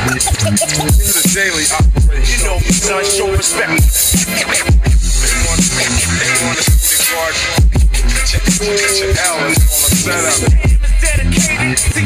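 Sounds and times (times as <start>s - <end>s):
rapped vocal: 0.0s - 12.0s.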